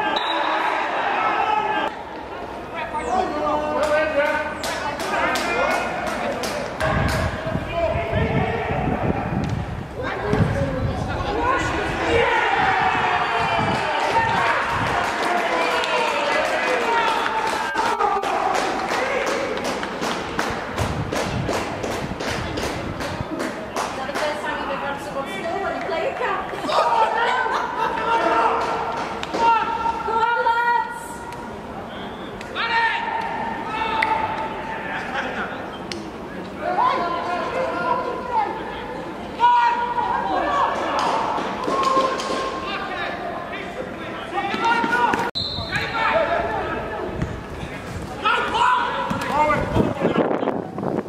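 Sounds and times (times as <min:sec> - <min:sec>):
players shouting: 0:00.0 - 0:10.4, 0:11.1 - 0:20.3, 0:26.4 - 0:35.6, 0:36.6 - 0:47.2, 0:48.1 - 0:50.1
sharp claps and thuds: 0:18.2 - 0:24.3.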